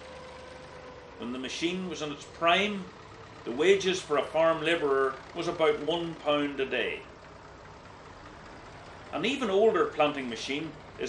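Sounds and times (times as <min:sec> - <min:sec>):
tractor engine hum: 0:00.0 - 0:11.0.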